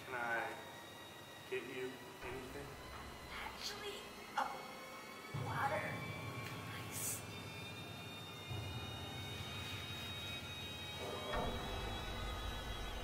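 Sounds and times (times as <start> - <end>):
ominous film score drone: 0.0 - 13.0.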